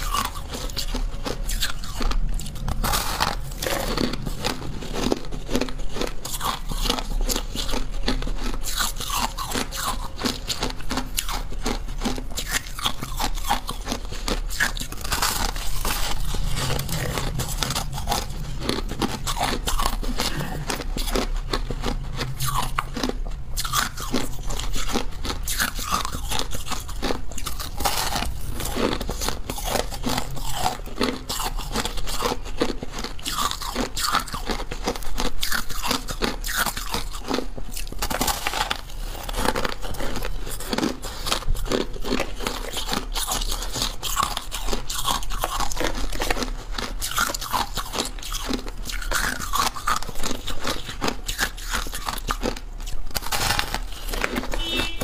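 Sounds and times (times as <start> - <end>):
ice crunching while chewed: 0.0 - 55.0.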